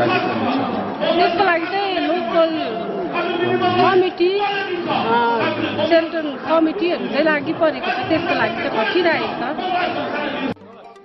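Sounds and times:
woman speaking into a microphone: 3.8s - 4.4s, 5.1s - 9.6s.

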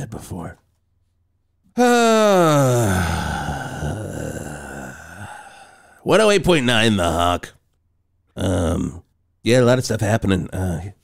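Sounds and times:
man sighing: 1.8s - 6.0s.

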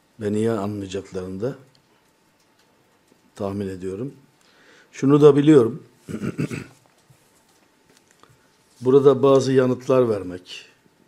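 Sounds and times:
man's rough vocal sound: 6.1s - 6.7s.

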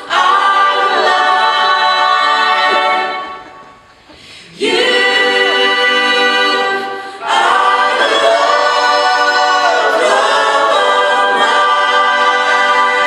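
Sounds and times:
voices singing in harmony: 0.0s - 13.0s.

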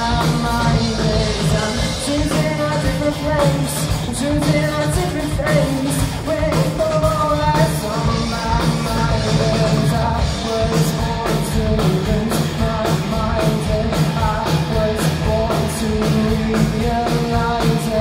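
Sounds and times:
live rock band playing: 0.0s - 18.0s
melodic guitar line: 0.0s - 18.0s.

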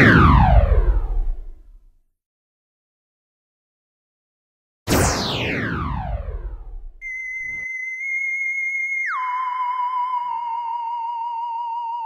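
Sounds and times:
falling electronic sweep: 4.9s - 7.6s.

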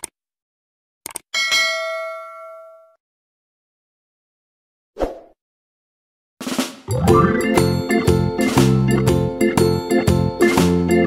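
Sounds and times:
bell ringing: 1.4s - 3.0s.

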